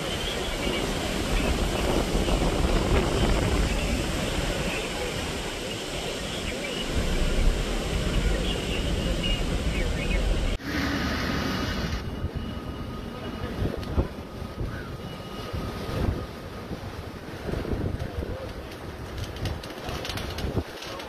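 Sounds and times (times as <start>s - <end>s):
wind and rain on microphone: 0.0s - 21.0s.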